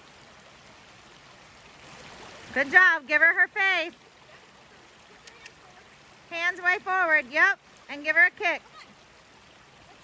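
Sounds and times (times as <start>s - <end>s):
creek running over rocks: 0.0s - 10.0s.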